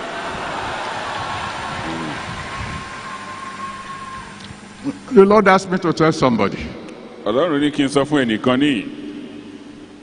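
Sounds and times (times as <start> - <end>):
crowd of many voices: 0.0 - 4.7.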